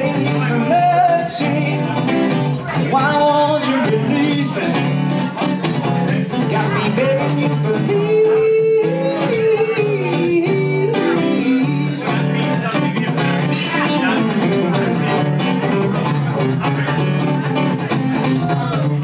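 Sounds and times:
acoustic guitar strummed: 0.0 - 19.0
man singing wordlessly: 0.0 - 19.0.

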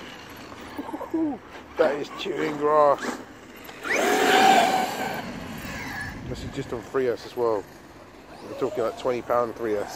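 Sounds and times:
electric motor whine: 3.0 - 6.9.

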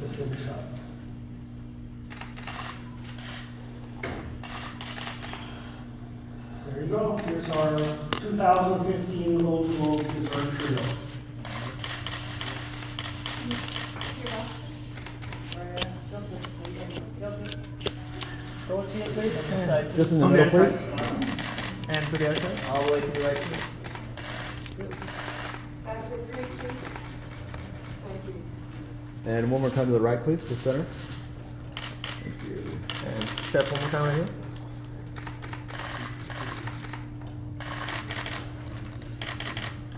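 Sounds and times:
steady low hum: 0.0 - 39.9
camera shutter clicks: 2.1 - 3.5, 4.4 - 5.4, 32.8 - 34.3, 35.2 - 38.5, 39.2 - 39.8
camera shutters clicking: 2.1 - 3.6, 4.4 - 5.4, 7.1 - 8.3, 9.3 - 19.5, 20.9 - 28.0, 31.0 - 34.4, 35.1 - 39.8.

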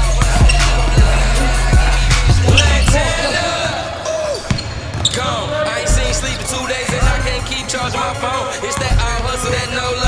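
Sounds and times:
hip-hop music: 0.0 - 10.0
voices: 0.0 - 10.0.

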